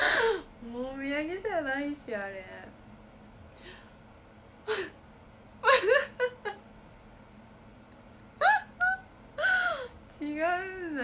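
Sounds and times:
woman laughing high-pitched: 5.6s - 6.6s, 8.4s - 9.9s.

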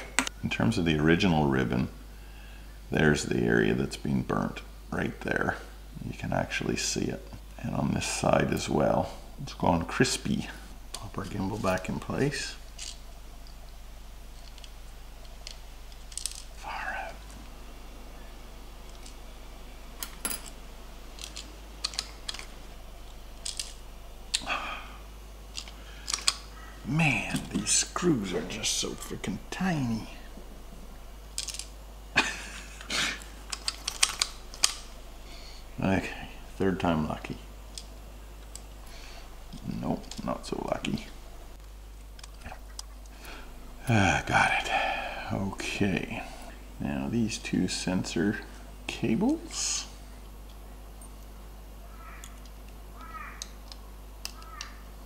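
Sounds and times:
steady low hum: 0.0s - 55.0s
person speaking: 2.9s - 12.7s, 16.5s - 17.4s, 26.8s - 30.7s, 35.3s - 37.5s, 38.9s - 41.3s, 42.4s - 50.0s
sharp plastic clicks: 25.6s - 26.5s, 52.2s - 54.8s.

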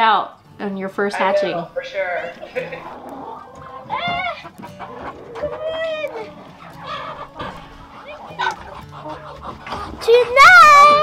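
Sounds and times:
chickens clucking and squawking: 1.2s - 11.0s
chicken rising and falling call: 2.8s - 9.6s.

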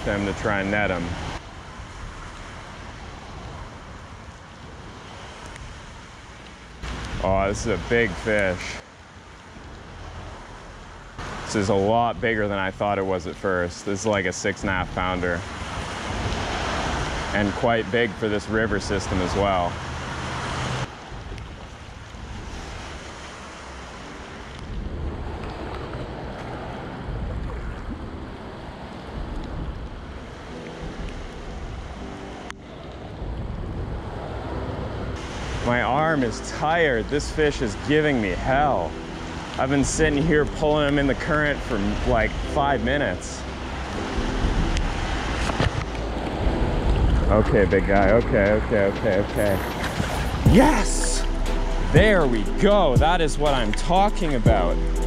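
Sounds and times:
creek water rushing: 0.0s - 55.0s
road traffic on a bridge: 0.0s - 55.0s
wind on microphone: 20.8s - 23.6s, 24.4s - 35.6s, 43.8s - 47.9s, 48.6s - 50.6s.

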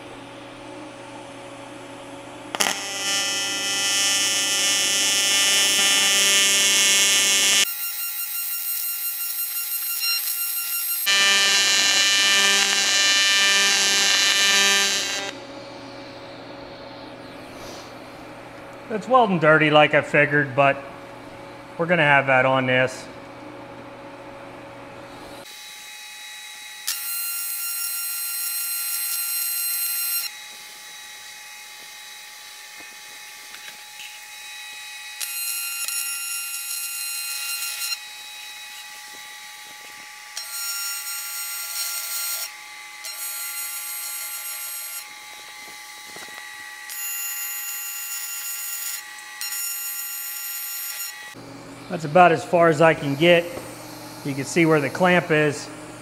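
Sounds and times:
welding arc buzzing whine: 0.0s - 56.0s.

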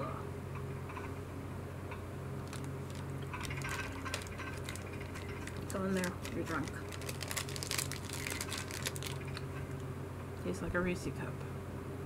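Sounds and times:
steady low hum: 0.0s - 12.0s
candy wrapper crinkling: 2.4s - 9.9s.

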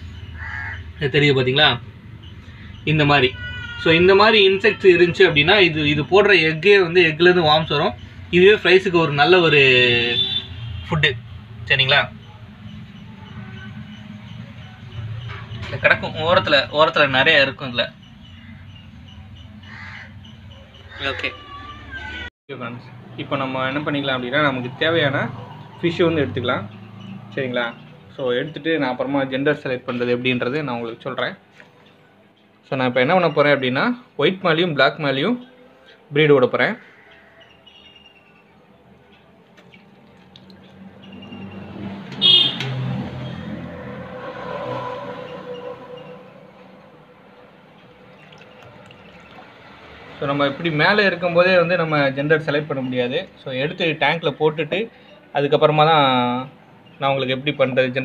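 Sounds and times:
bird harsh call: 0.0s - 1.0s, 18.2s - 22.3s
vehicle passing by: 22.8s - 28.2s, 40.0s - 52.4s
high-pitched horn toot: 42.2s - 42.7s.

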